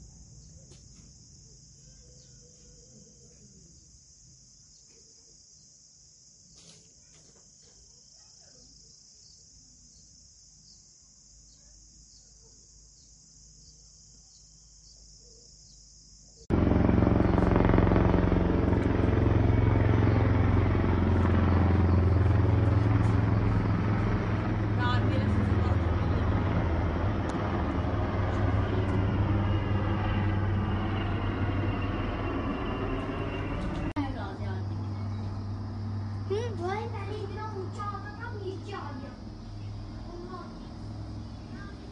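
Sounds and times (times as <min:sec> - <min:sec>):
insects chirping: 0:00.0 - 0:41.9
helicopter drone overhead: 0:16.5 - 0:41.9.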